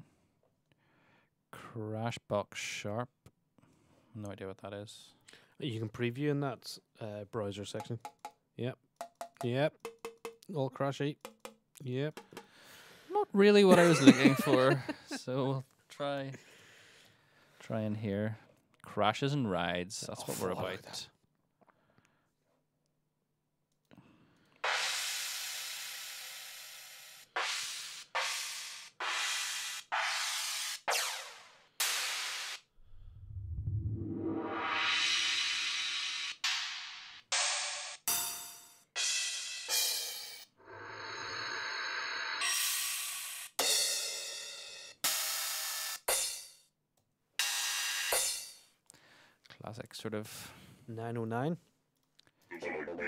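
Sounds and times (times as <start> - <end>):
low rumble: 32.8 - 34.8.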